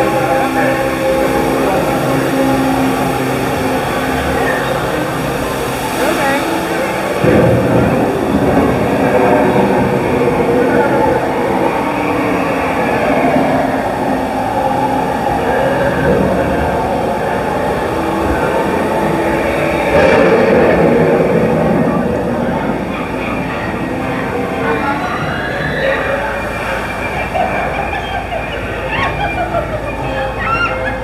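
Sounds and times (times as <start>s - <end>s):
indistinct voices: 0.0s - 31.0s
water rushing and rumbling: 0.0s - 31.0s.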